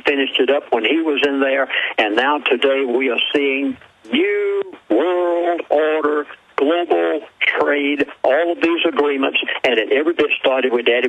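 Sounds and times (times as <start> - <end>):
man talking with radio-like sound: 0.0 - 11.0.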